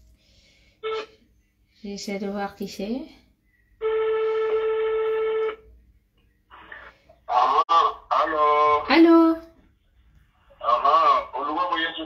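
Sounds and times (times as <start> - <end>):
phone ringback tone: 3.8 - 5.7.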